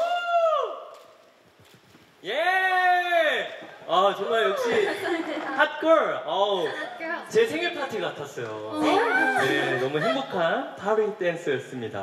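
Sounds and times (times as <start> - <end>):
excited drawn-out vocal exclamation: 8.7 - 10.4.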